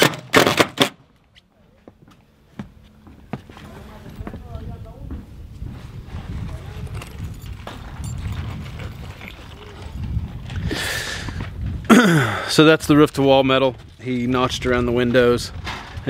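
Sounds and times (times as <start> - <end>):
wind rumbling on microphone: 3.8 - 16.0
faint voices: 8.7 - 11.4.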